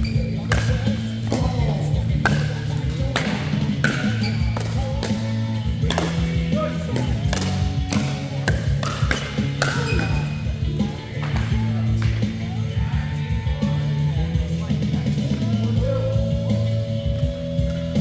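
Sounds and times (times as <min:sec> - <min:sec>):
background music: 0:00.0 - 0:18.0
paddles hitting plastic ball: 0:00.5 - 0:10.3.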